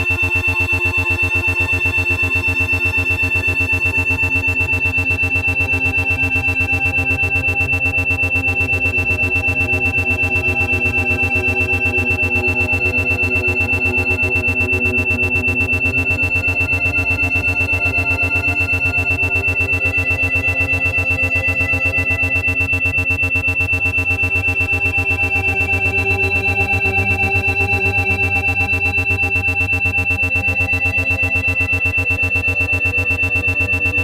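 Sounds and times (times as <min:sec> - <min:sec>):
pulsing ambient synthesizer music: 0:00.0 - 0:34.0.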